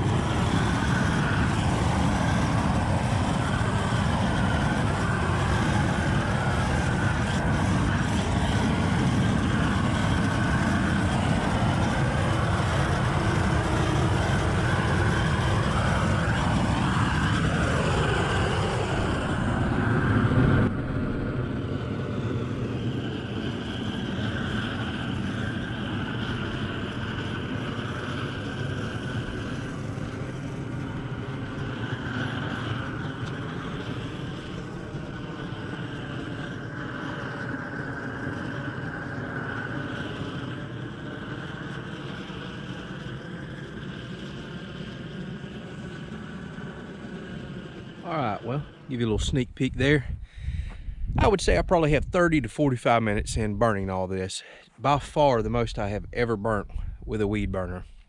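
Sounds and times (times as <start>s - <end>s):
propane torch rushing: 0.0s - 52.4s.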